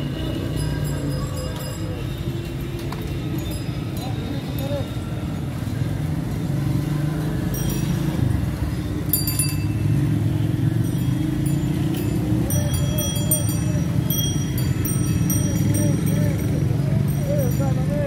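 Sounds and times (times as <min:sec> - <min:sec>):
indistinct voices: 0:11.4 - 0:18.0.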